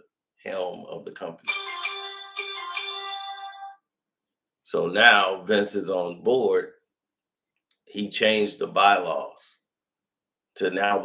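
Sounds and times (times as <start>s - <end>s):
electronic ringtone tune: 1.5s - 3.8s.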